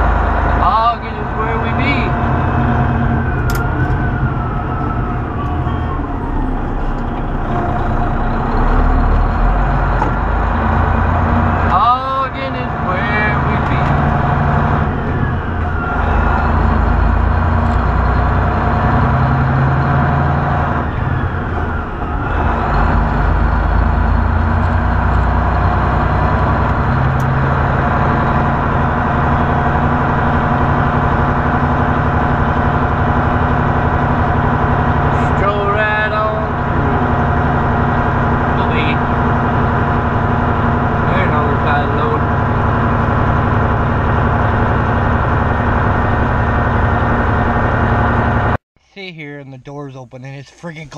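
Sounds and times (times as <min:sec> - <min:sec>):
diesel truck engine humming: 0:00.0 - 0:49.9.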